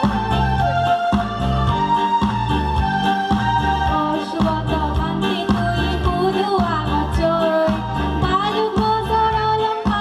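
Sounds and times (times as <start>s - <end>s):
electronic keyboard chords and bass: 0.0s - 10.0s
girl singing into a microphone: 3.9s - 10.0s.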